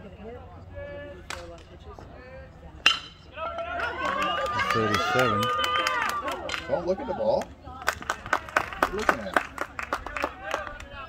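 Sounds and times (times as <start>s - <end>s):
spectators' voices: 0.0s - 11.0s
metal bat striking ball: 2.8s - 3.3s.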